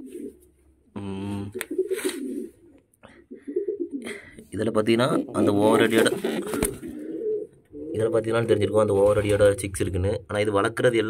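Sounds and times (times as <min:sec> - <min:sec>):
pigeons cooing: 0:00.0 - 0:00.4, 0:01.1 - 0:04.5, 0:05.1 - 0:08.3.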